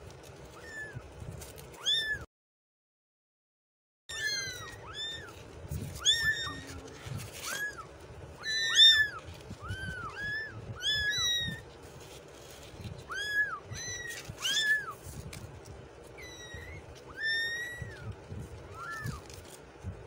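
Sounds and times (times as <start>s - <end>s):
kittens meowing: 0.5s - 1.1s, 1.7s - 2.3s, 4.1s - 11.8s, 12.8s - 15.0s, 16.0s - 19.4s.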